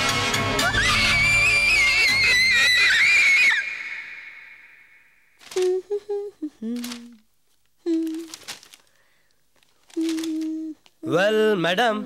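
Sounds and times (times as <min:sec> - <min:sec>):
woman screaming: 0:00.6 - 0:04.5.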